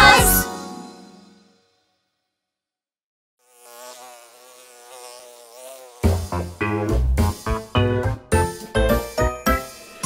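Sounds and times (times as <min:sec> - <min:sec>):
cartoon insect wings buzzing: 0:03.4 - 0:07.5.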